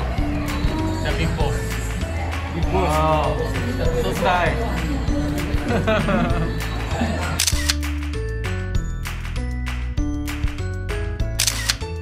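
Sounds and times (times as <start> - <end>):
background music with bass line: 0.0 - 12.0
people laughing: 2.2 - 7.5.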